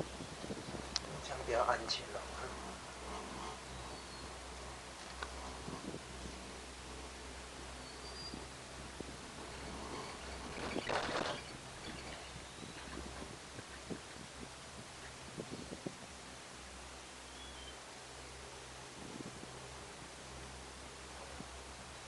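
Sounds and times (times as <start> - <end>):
gondola low hum: 0.0 - 22.0.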